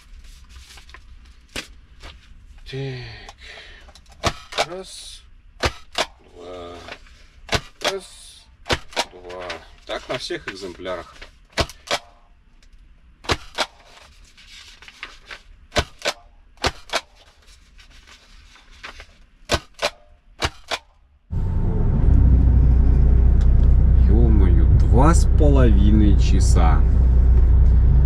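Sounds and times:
truck low rumble: 21.3 - 28.0.

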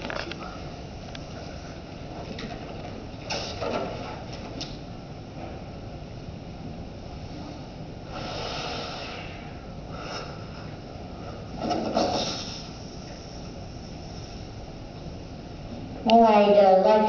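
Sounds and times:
rush of air from balloon: 7.3 - 10.6, 11.2 - 14.6.

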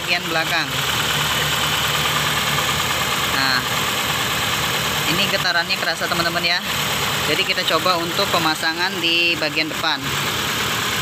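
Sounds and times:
car engine idling rough: 0.0 - 11.0.

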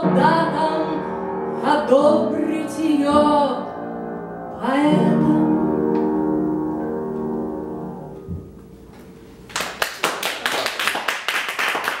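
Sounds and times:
audience applauding: 9.5 - 12.0.

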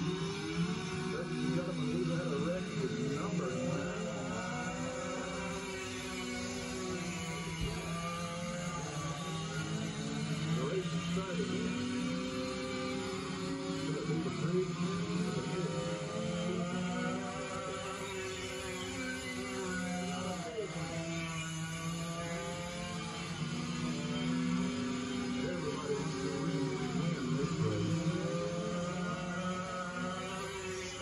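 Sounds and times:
go-kart engines racing past: 0.0 - 31.0.

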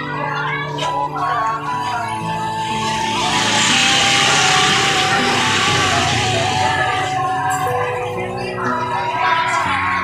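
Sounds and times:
music with held melody: 0.0 - 10.0
motor scooter passing: 1.2 - 10.0.

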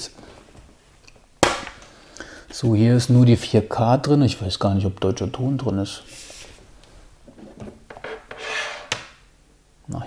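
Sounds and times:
box surface rubbing: 7.3 - 9.0.

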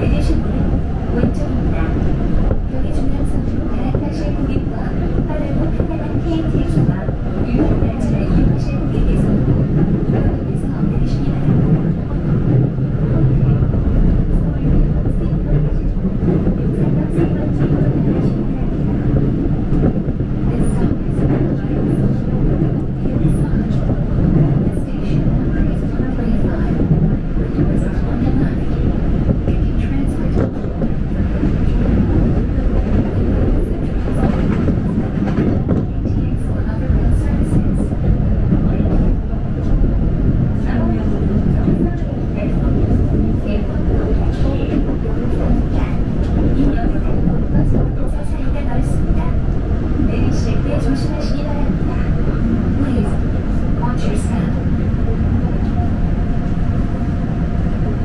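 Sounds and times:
train rumbling on track: 0.0 - 58.0.

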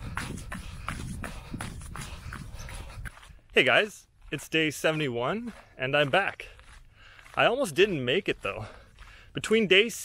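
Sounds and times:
wind rumble on microphone: 0.0 - 3.4
footsteps on gravel: 0.0 - 10.0.

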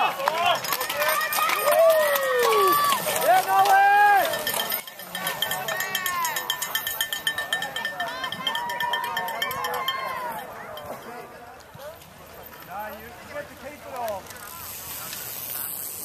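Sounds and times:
spectators cheering: 0.0 - 10.6
cowbell ringing: 4.1 - 11.2.

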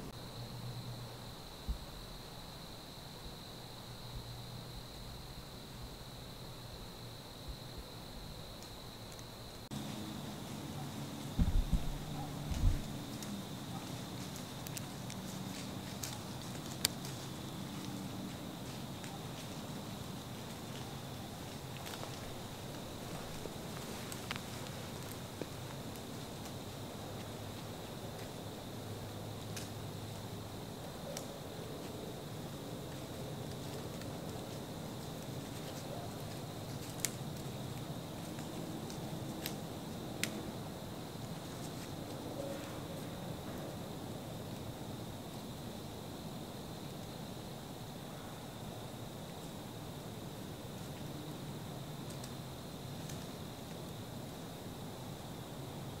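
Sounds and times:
woodland ambience: 0.0 - 56.0
dull thumps: 11.4 - 12.0.

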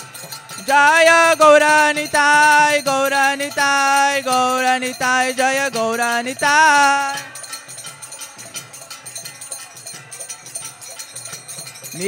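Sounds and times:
brass hand cymbals ringing: 0.0 - 12.0.

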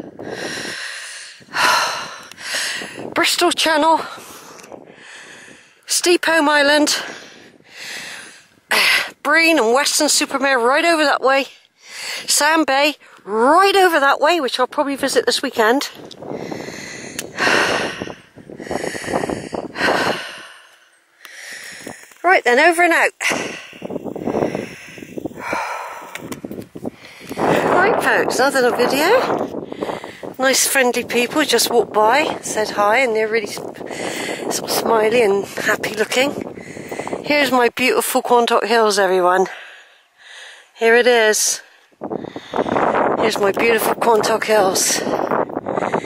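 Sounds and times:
person breathing hard: 0.0 - 3.1, 4.0 - 5.9, 6.9 - 9.2, 11.7 - 12.3, 16.2 - 22.2, 23.2 - 27.8, 29.3 - 30.4, 33.8 - 34.5, 36.4 - 37.3, 39.5 - 40.8, 41.6 - 43.0, 45.0 - 46.0.

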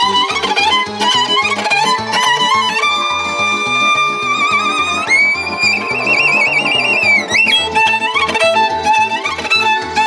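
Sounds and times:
violin high note with vibrato: 2.6 - 9.0
pulsing low accompaniment: 3.0 - 8.2.

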